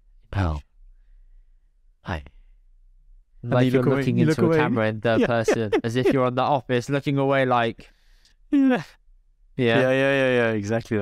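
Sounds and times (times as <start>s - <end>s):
man speaking a syllable: 3.5s - 6.4s, 9.6s - 11.0s.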